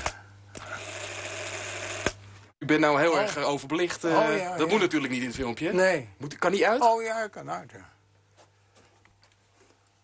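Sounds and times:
cine camera whirring: 0.0 - 2.3.

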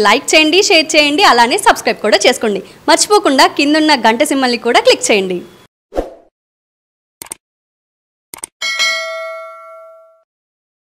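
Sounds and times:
bell ding: 8.6 - 10.3.

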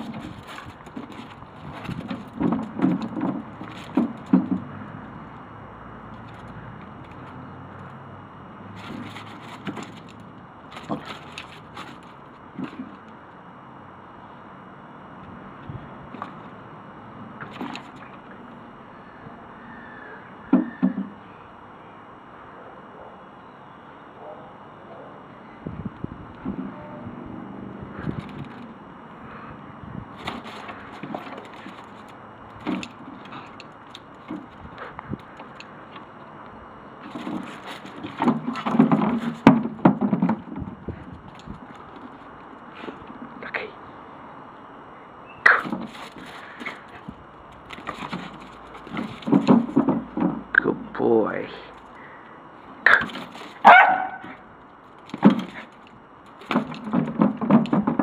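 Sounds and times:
dog playing on paving slabs: 0.0 - 8.0, 8.6 - 13.4, 16.0 - 16.6, 17.2 - 18.6, 27.4 - 29.5, 30.1 - 43.4, 45.4 - 50.9, 51.5 - 58.0.

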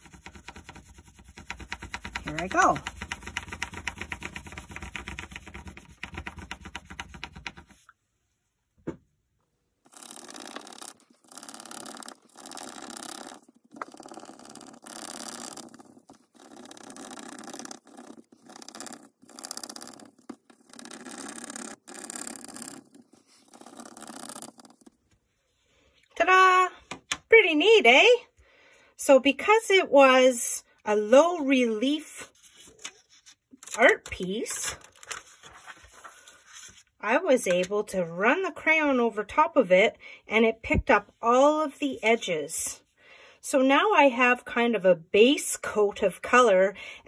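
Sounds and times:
crayon scratching on paper: 0.0 - 7.9, 9.9 - 25.1, 32.2 - 36.9
person's voice: 2.1 - 2.9, 26.2 - 28.3, 33.7 - 34.8.

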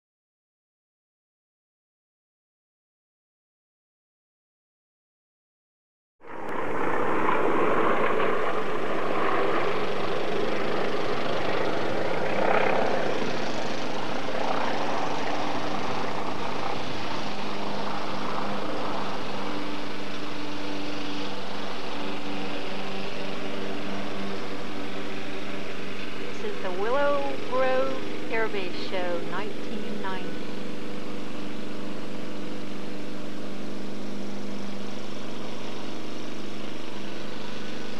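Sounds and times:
distant aircraft engine drone: 6.2 - 37.9.

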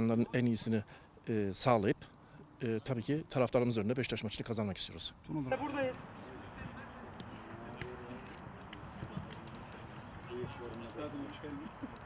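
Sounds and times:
footballers chatting and calling: 5.1 - 12.0.

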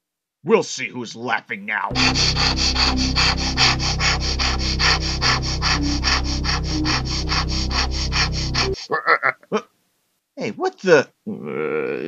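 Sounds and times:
cartoon music score: 1.9 - 8.8
hand saw rasping through wood: 1.9 - 8.8.

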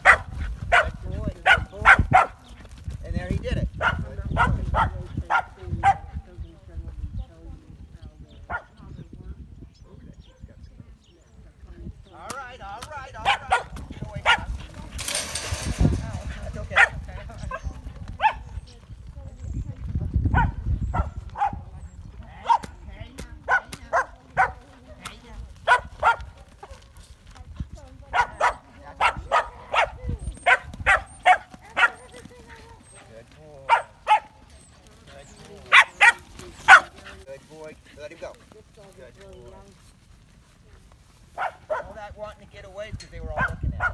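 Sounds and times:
dog barking: 0.0 - 2.4, 3.8 - 6.2, 8.5 - 8.8, 13.2 - 14.6, 16.7 - 18.5, 20.3 - 21.7, 22.4 - 22.8, 23.5 - 24.6, 25.6 - 26.9, 28.1 - 32.2, 33.7 - 34.4, 35.7 - 37.0, 41.4 - 42.0, 43.4 - 43.9.

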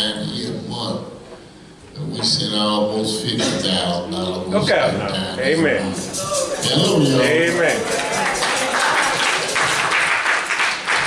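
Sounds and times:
congregation applauding: 6.4 - 11.0.

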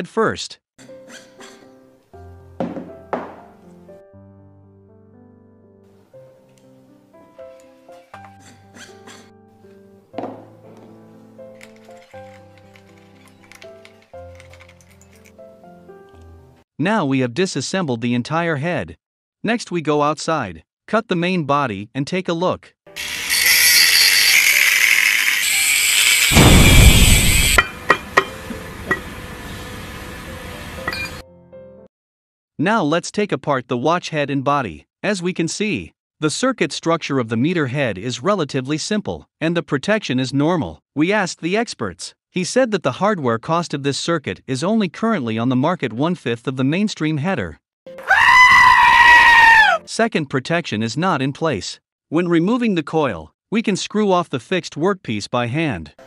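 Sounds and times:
power tool cutting metal: 23.0 - 29.1.

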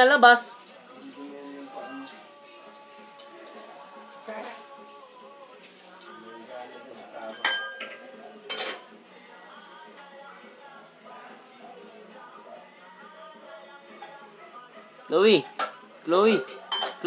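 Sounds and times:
dishes and cutlery clinking: 7.2 - 9.0, 13.9 - 14.3, 15.4 - 17.0.

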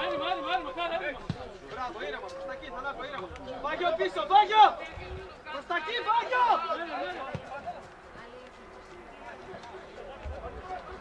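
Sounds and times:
voices shouting: 0.0 - 7.5.

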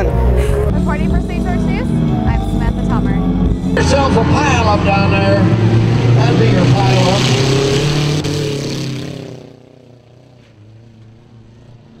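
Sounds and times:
car engines running: 0.0 - 12.0.

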